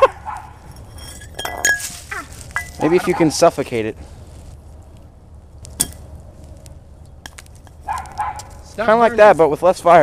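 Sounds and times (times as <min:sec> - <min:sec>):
bonfire of leaves crackling: 0:00.0 - 0:10.0.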